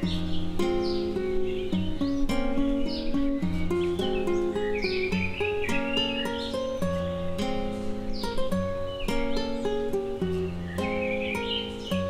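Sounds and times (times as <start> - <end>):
acoustic guitar plucked notes: 0.0 - 12.0
birds chirping: 0.0 - 12.0.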